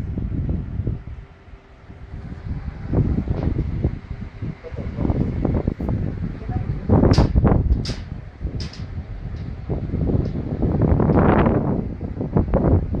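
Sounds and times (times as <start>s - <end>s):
wind noise on microphone: 0.0s - 13.0s.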